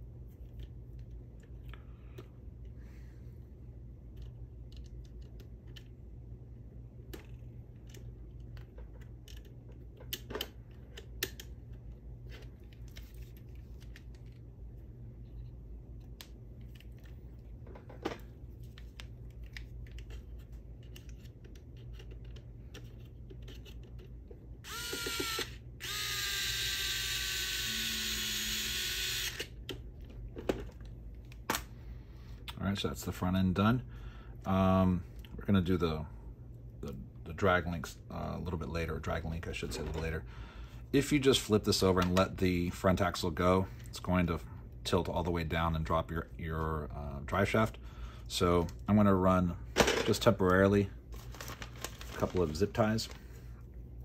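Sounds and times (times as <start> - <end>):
electric screwdriver whining: 24.6 - 29.5.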